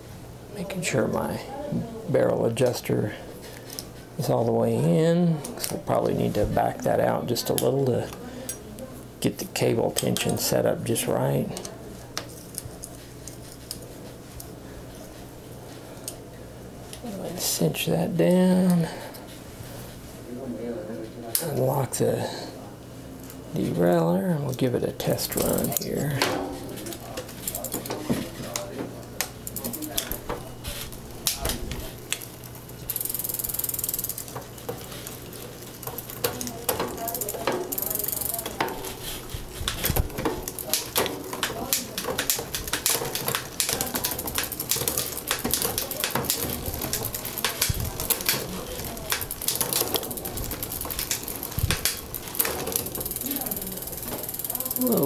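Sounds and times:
bicycle chain clicking and rattling: 25.2 - 28.7, 29.4 - 55.0.

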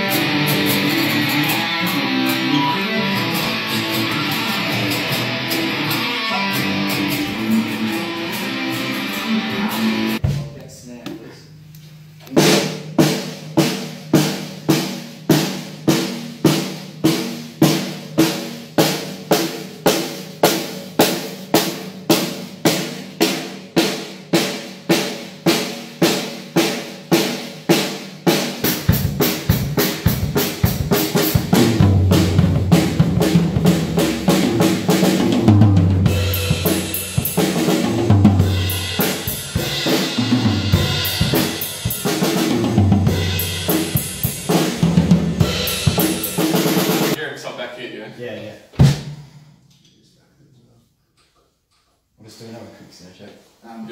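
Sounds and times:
drum kit groove: 0.0 - 47.6, 48.6 - 49.7.

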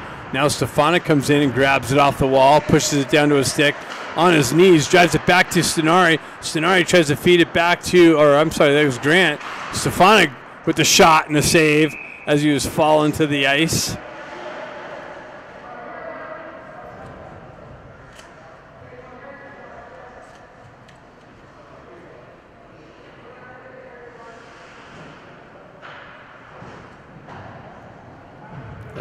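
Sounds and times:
faint indistinct voices: 13.9 - 29.0.

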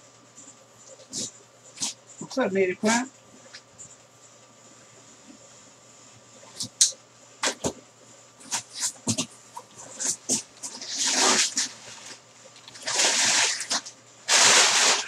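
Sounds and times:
packing paper rustling: 8.4 - 15.0.

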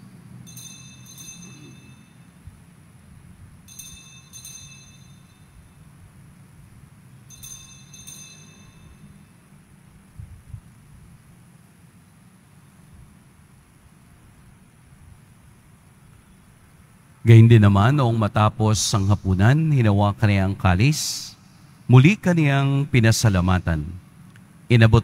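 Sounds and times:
low steady hum: 0.0 - 25.0
faint altar bells ringing: 0.4 - 2.5, 3.6 - 6.0, 7.2 - 9.6.

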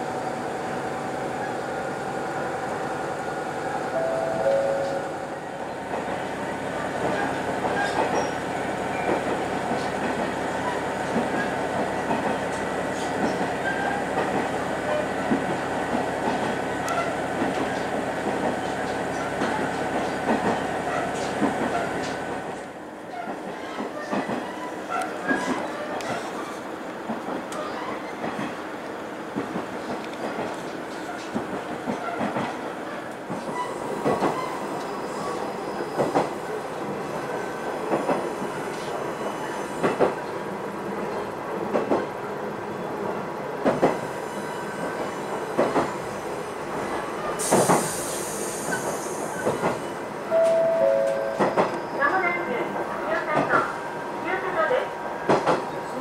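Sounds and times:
train running noise: 0.0 - 56.0
railcar wheels knocking on rail joints: 11.0 - 22.5, 43.6 - 44.0, 55.2 - 55.8.

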